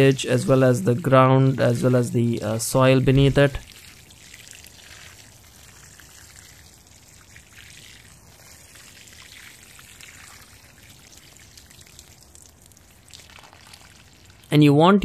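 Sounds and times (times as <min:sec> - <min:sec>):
water sprinkling on soil: 0:00.0 - 0:14.6.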